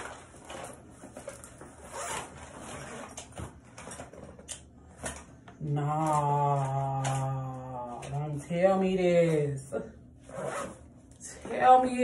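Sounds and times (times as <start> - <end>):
rustling handling of small items: 0.0 - 8.3.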